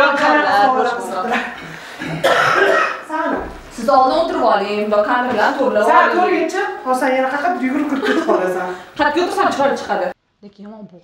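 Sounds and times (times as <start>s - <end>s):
person speaking: 0.0s - 10.2s
person coughing: 1.5s - 3.1s.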